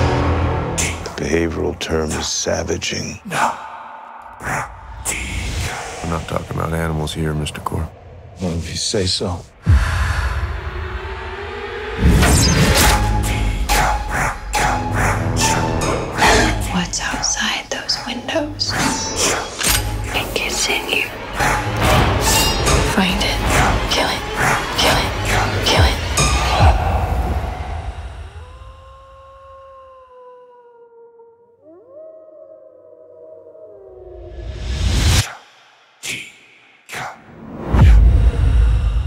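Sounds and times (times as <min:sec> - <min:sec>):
breathy whispered voices: 0:00.8 - 0:10.6, 0:16.2 - 0:21.8, 0:35.2 - 0:37.3
wolf howling: 0:26.4 - 0:35.0.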